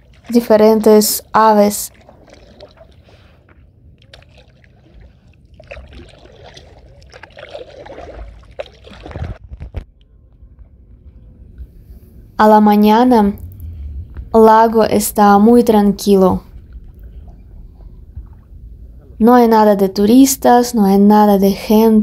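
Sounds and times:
paddle splashing in water: 0.0s - 0.8s, 1.8s - 9.8s.

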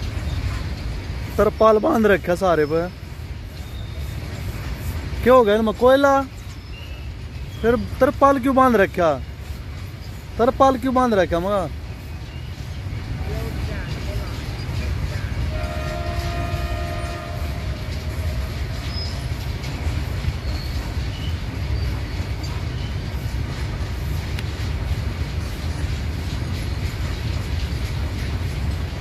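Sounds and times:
train wheels rumbling on rails: 0.0s - 29.0s
train horn: 15.3s - 18.7s.

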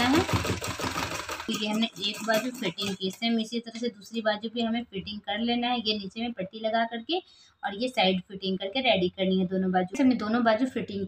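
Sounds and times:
sewing machine running: 0.0s - 3.0s.

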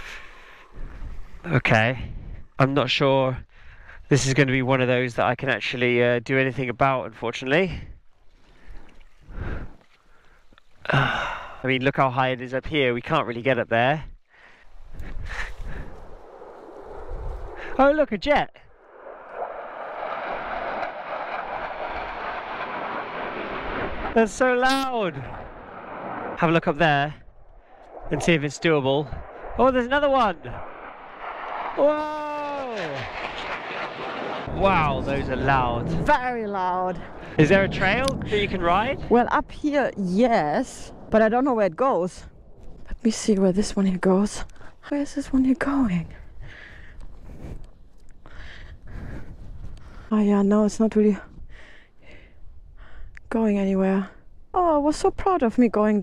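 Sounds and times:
person breathing heavily: 0.0s - 1.2s, 8.7s - 11.6s, 14.3s - 16.2s
low steady rumble: 14.4s - 44.9s
jet aircraft flying over: 14.6s - 44.7s.

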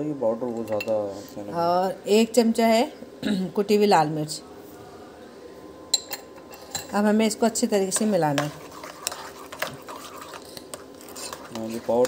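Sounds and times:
spoon scraping in a bowl: 7.8s - 12.0s
person speaking: 11.1s - 12.0s.

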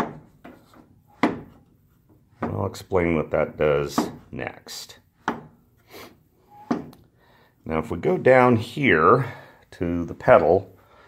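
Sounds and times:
hand rubbing wooden levers: 0.0s - 8.9s.

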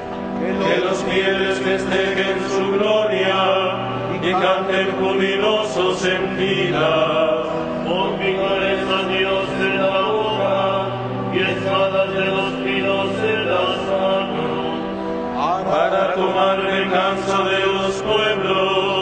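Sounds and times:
person chanting a psalm: 0.3s - 19.0s.

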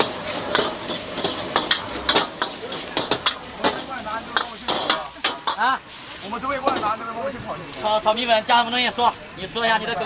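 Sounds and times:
metal spatula scraping a wok: 0.0s - 7.1s
noodles sizzling in a wok: 0.0s - 10.0s.

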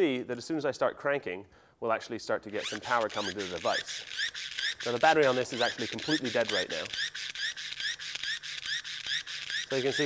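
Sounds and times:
pull-cord generator whirring: 2.5s - 10.0s.

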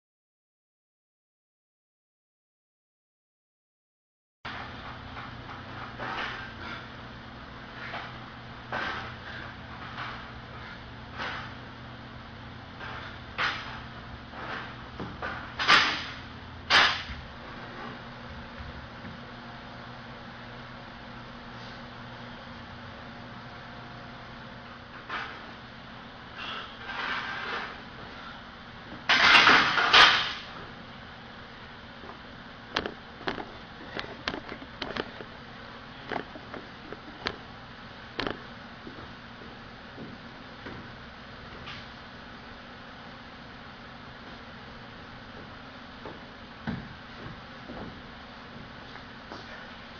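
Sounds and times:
steady low hum: 4.5s - 49.9s.

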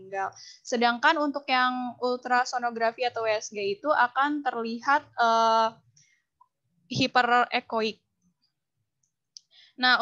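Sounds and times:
woman speaking: 0.0s - 5.8s, 6.9s - 8.0s, 9.8s - 10.0s.

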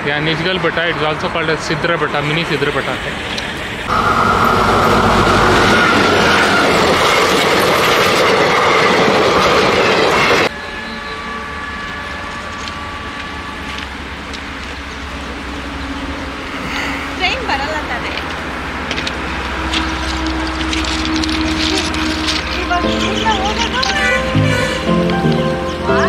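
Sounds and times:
diesel locomotive passing: 0.0s - 26.0s
outdoor background: 0.0s - 26.0s
held tone sliding lower: 8.5s - 15.2s.

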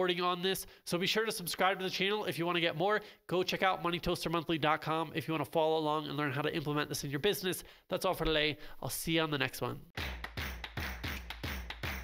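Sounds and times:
fast percussive beat: 10.0s - 12.0s.

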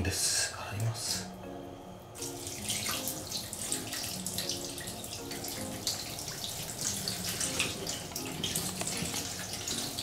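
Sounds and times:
water pouring and splashing: 2.2s - 10.0s.

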